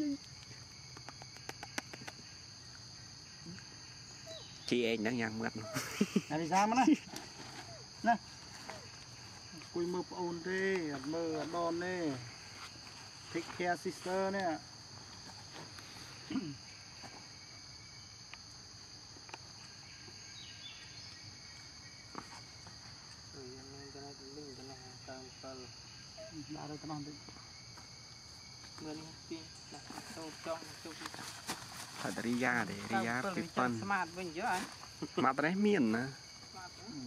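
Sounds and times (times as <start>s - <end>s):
faint chirp: 0.0s - 6.0s
insect chorus buzzing: 0.0s - 37.0s.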